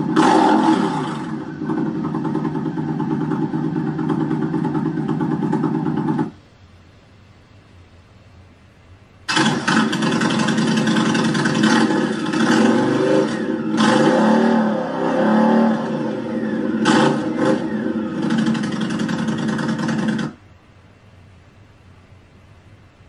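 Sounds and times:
motorcycle engine revving: 0:00.0 - 0:06.4, 0:09.3 - 0:20.4.

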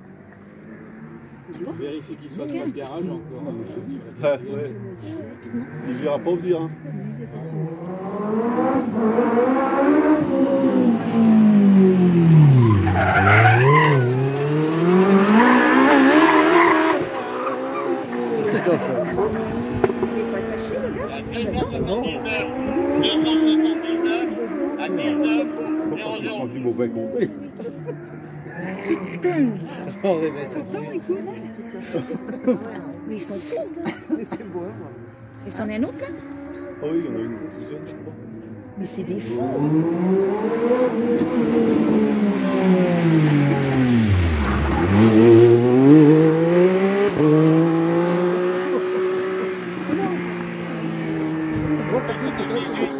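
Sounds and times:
motorcycle engine passing: 0:34.5 - 0:52.9.

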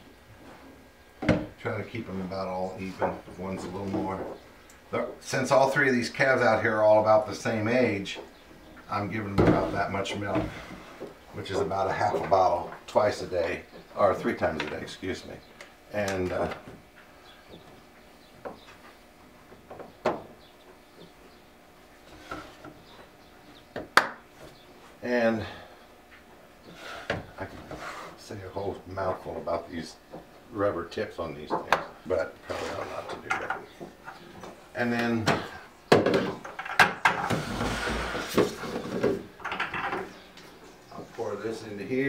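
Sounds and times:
scraping rustle: 0:22.0 - 0:22.8, 0:32.4 - 0:33.3, 0:37.2 - 0:39.3.

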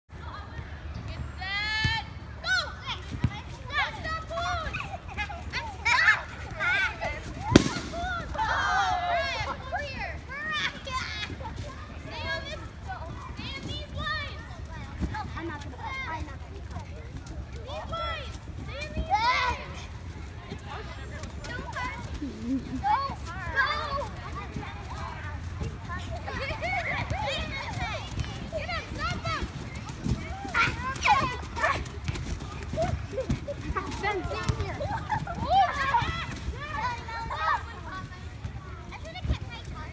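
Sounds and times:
children shouting: 0:07.4 - 0:11.0
children calling and squealing: 0:20.7 - 0:39.9.

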